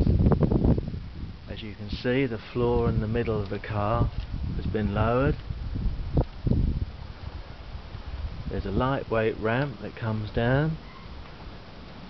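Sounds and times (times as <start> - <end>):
microphone handling noise: 0.0 - 9.1
wind rumbling on microphone: 0.0 - 12.0.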